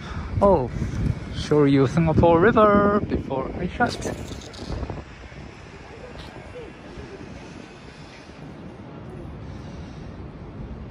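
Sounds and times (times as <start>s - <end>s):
city background noise: 0.0s - 10.9s
faint voices: 0.4s - 10.9s.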